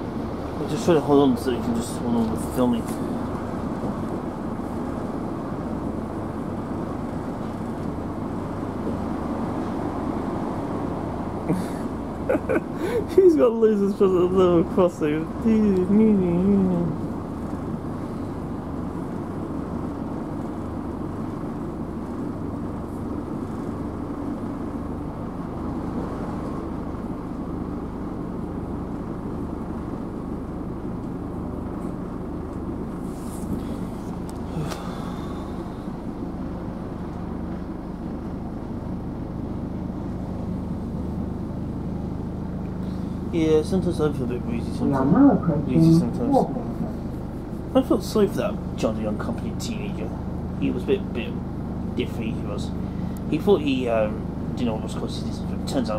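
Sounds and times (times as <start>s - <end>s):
train interior rumble: 42.8s - 51.4s.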